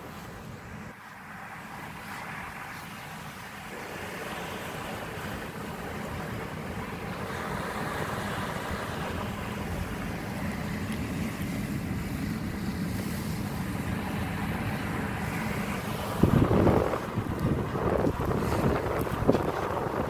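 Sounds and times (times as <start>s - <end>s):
car interior rumble and hiss: 0.0s - 20.0s
wind buffeting microphone: 3.4s - 20.0s.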